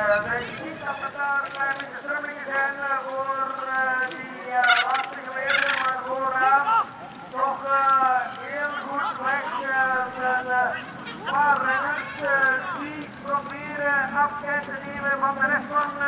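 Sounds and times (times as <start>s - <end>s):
spectators yelling: 4.7s - 13.1s.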